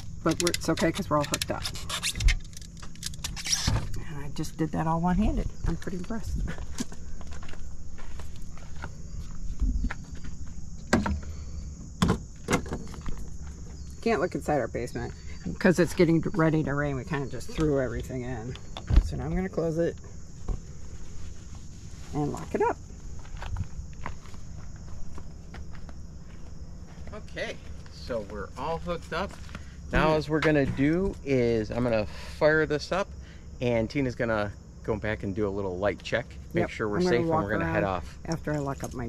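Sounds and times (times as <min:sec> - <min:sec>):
footsteps on gravel: 0:06.4 - 0:10.6, 0:23.0 - 0:28.0.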